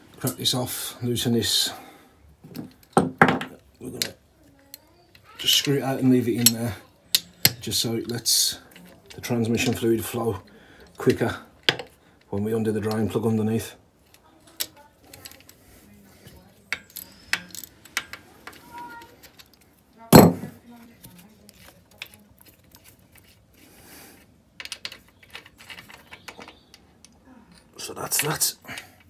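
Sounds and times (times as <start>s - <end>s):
small metallic clicks and clinks: 4.0s - 9.8s, 14.0s - 15.6s, 16.2s - 19.7s, 24.6s - 29.0s.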